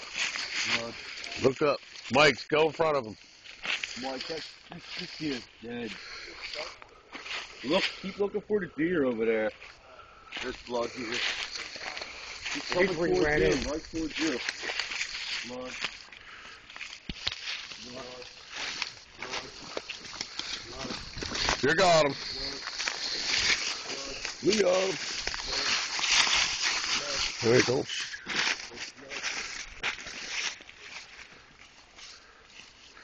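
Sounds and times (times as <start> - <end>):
footsteps through dry leaves: 0.0 - 8.7, 9.3 - 33.0.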